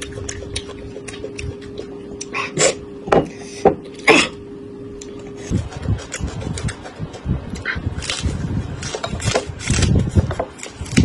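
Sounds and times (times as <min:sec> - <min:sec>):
crunchy chewing of green onions: 0:00.0 - 0:02.9, 0:04.9 - 0:11.0.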